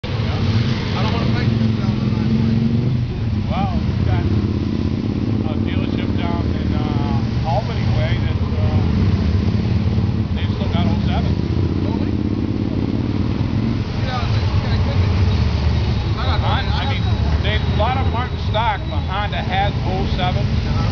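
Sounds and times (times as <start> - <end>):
motorcycles riding past slowly: 0.1 - 20.9.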